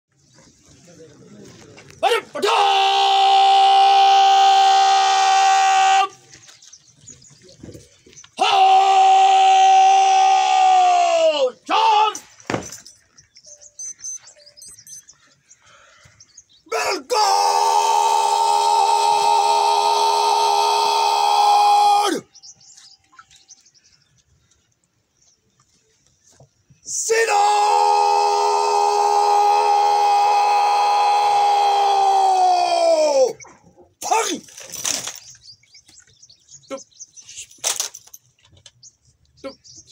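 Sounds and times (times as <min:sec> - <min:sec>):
soldiers shouting drill command: 0:02.0 - 0:06.2, 0:08.4 - 0:12.2, 0:16.7 - 0:18.1, 0:34.0 - 0:34.5
faint chirps: 0:12.2 - 0:16.7.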